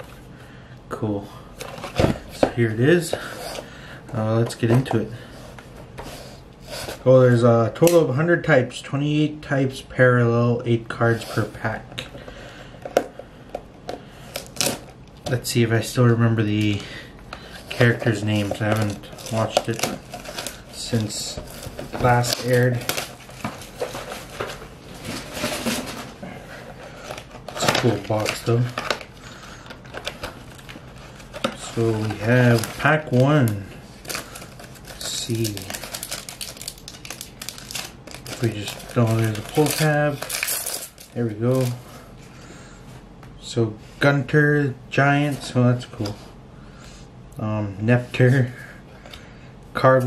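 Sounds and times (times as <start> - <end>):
cardboard rustle: 17.6 - 29.1, 29.8 - 41.8.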